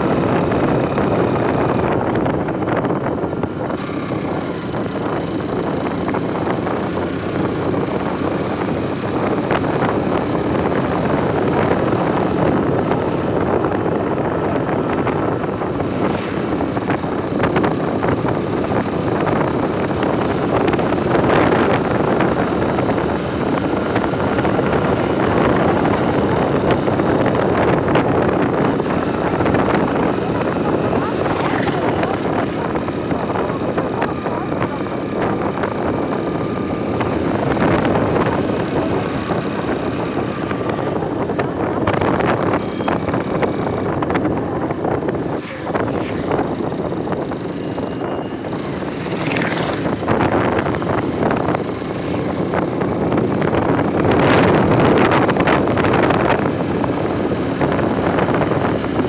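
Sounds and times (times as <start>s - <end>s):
vehicle road and engine noise: 0.0s - 59.0s
wind rushing past window: 0.0s - 59.0s.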